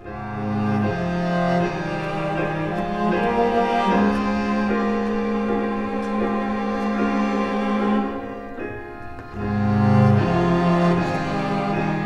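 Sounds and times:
bowed strings long notes: 0:00.0 - 0:12.0.

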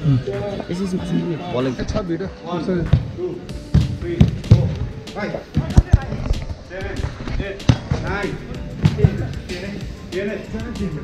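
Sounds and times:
players' voices: 0:00.0 - 0:11.0
ball kicked on turf: 0:07.6 - 0:09.7.

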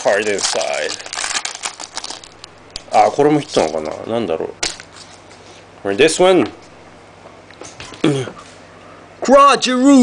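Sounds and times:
cards and foil wrapper crinkling: 0:00.0 - 0:05.6.

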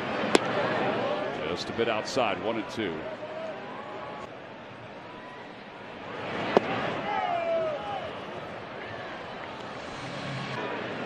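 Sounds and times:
ballpark crowd noise: 0:00.0 - 0:11.0
people shouting: 0:07.0 - 0:08.2.

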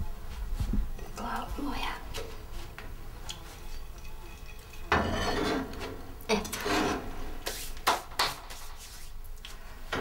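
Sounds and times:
pot scraping on stove top: 0:03.6 - 0:07.8.

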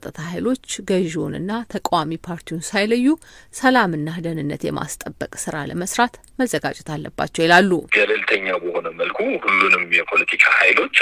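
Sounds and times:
narrator speaking: 0:07.5 - 0:11.0.

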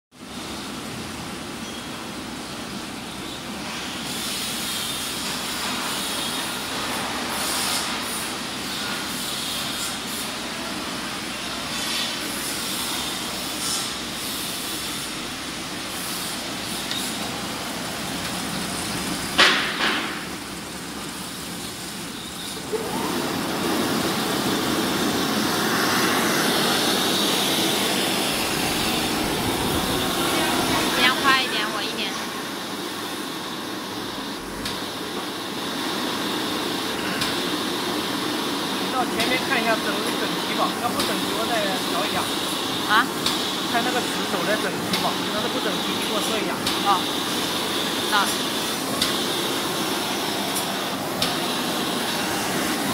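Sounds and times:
laminating machine running: 0:00.2 - 0:52.9.

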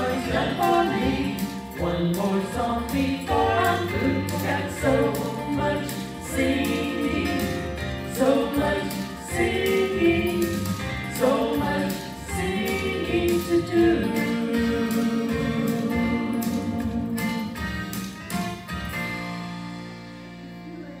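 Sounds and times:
women singing in harmony: 0:00.0 - 0:01.6, 0:03.2 - 0:17.4
instrumental accompaniment: 0:00.0 - 0:21.0.

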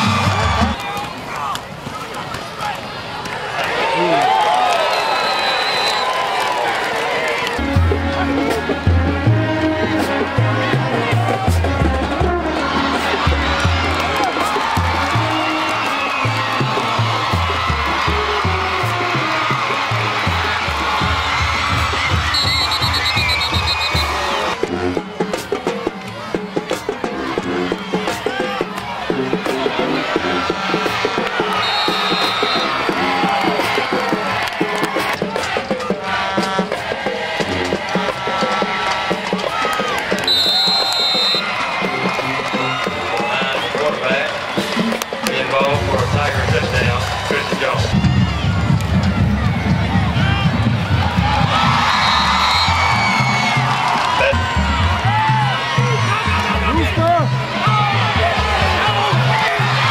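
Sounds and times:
crowd cheering: 0:00.0 - 0:59.9
crowd noise: 0:00.0 - 0:59.9
short high whistle blasts: 0:04.8 - 0:06.3, 0:22.3 - 0:24.2, 0:31.6 - 0:32.7, 0:40.2 - 0:41.5, 0:52.0 - 0:52.9
marching band drums: 0:07.6 - 0:25.9, 0:30.6 - 0:57.2.

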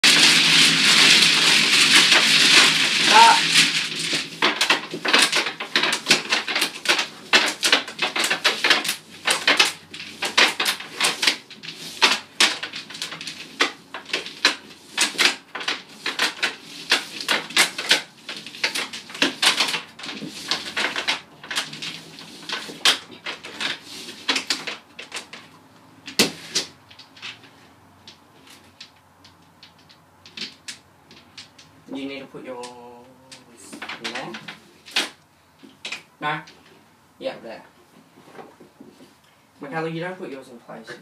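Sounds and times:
mahjong tiles shuffling: 0:00.0 - 0:36.8
tiles clicking and clacking: 0:00.0 - 0:36.8.

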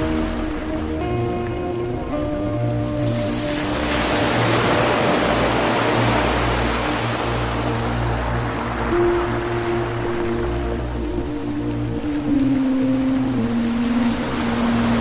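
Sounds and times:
ambient music of held tones: 0:00.0 - 0:15.0.

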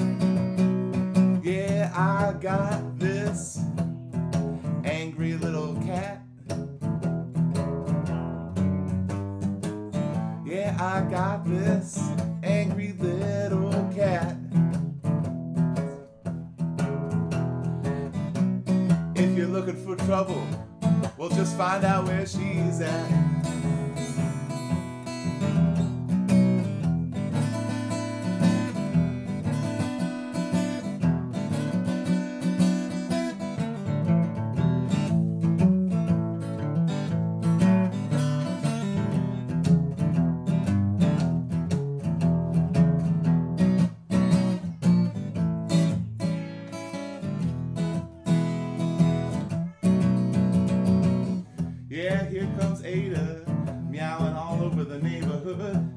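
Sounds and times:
acoustic guitar strumming blues: 0:00.0 - 0:55.9.

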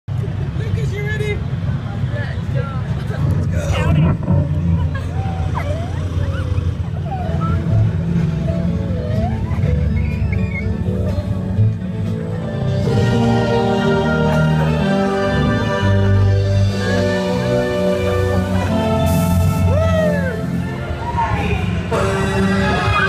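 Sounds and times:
ride car rumbling: 0:00.1 - 0:23.0
riders calling out: 0:03.3 - 0:07.8.

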